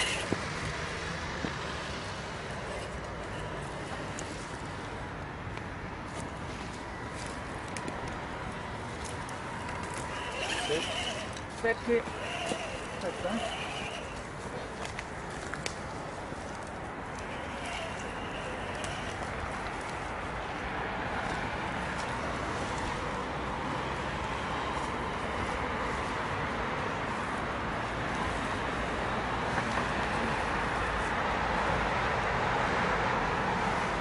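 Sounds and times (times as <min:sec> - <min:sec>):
small electric motor whine: 0:00.0 - 0:00.7, 0:09.0 - 0:15.0, 0:17.1 - 0:19.9
light clicks from terrain: 0:05.5 - 0:23.1
background voices talking: 0:09.8 - 0:15.0.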